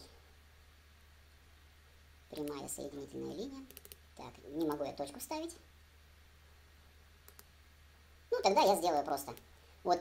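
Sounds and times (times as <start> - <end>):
low steady hum: 0.0 - 10.0
computer mouse clicks: 3.6 - 4.0, 7.2 - 7.5.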